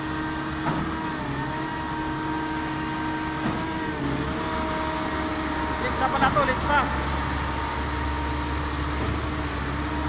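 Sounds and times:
diesel engine running: 0.0 - 10.0
pump whine: 0.0 - 10.0.

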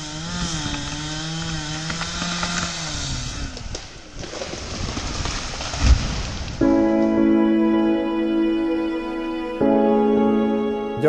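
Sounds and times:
chainsaw running at high revs: 0.0 - 5.1
branches cracking: 0.2 - 7.2
tree trunk thudding on ground: 3.6 - 6.6.

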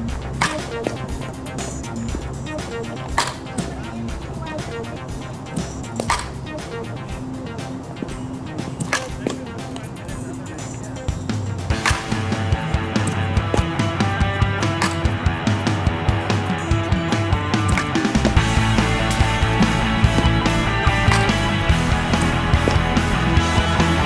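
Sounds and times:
background music: 0.0 - 24.0
bat hitting ball: 0.3 - 2.3, 2.9 - 3.8, 5.0 - 6.5, 8.0 - 9.9, 11.7 - 24.0.

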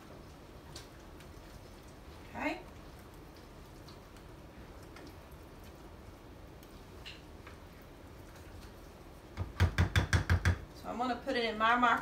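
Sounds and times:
sharp knocks: 9.4 - 10.6.

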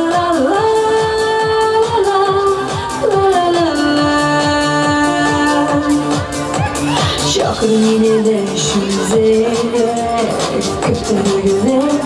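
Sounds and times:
backing track with steady beat: 0.0 - 12.0
woman singing pop song: 0.0 - 12.0.

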